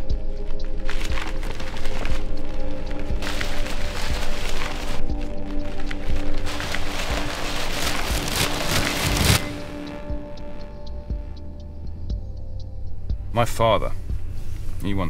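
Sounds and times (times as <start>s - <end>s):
music drone: 0.0s - 15.0s
newspaper pages rustling: 0.4s - 10.0s.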